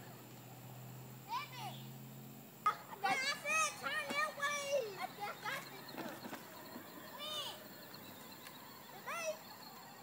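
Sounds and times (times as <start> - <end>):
children shouting: 2.7 - 10.0.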